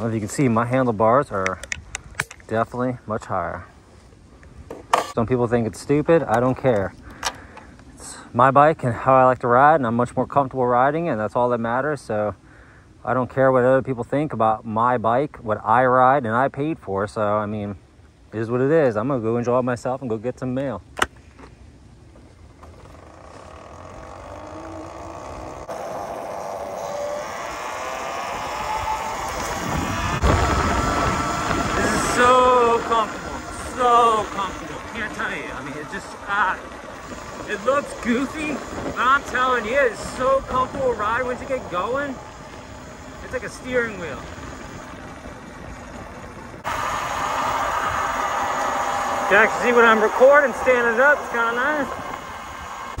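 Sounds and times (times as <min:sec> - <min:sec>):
wind and road noise: 0:00.0 - 0:13.6, 0:17.5 - 0:53.0
electric motorbike motor whining: 0:22.2 - 0:53.0
electric dirt bike riding hiss: 0:22.6 - 0:45.8, 0:46.6 - 0:53.0.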